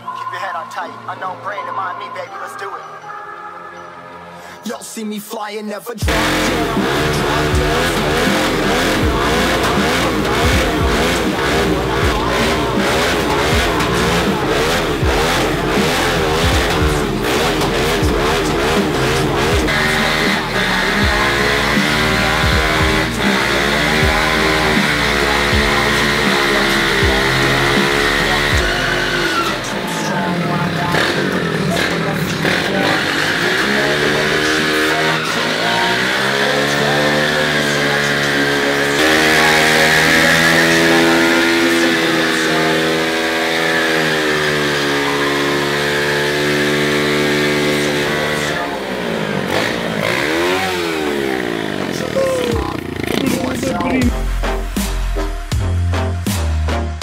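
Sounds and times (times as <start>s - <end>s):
music playing: 0.0s - 57.0s
dirt bike engine revving: 6.0s - 56.5s.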